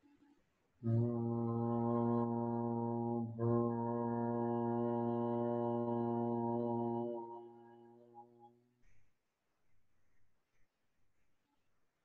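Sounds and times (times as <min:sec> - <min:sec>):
man chanting low note: 0:00.9 - 0:07.4.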